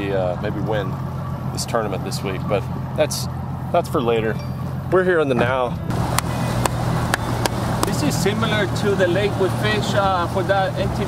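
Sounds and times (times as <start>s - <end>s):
outboard motor humming: 0.0s - 11.0s.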